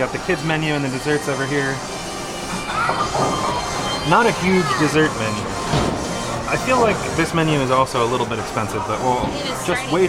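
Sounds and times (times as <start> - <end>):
hall noise: 0.0 - 10.0
bowling balls rolling: 2.3 - 8.6.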